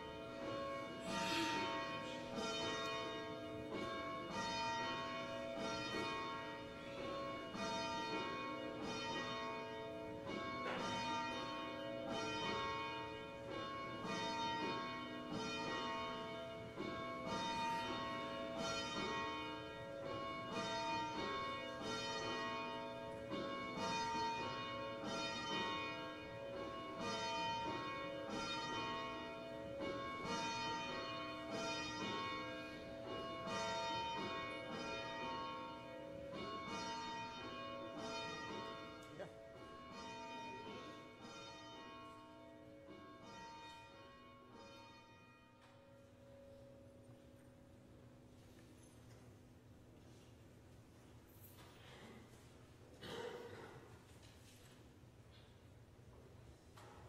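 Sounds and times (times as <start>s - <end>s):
church bells ringing: 0.0s - 49.8s.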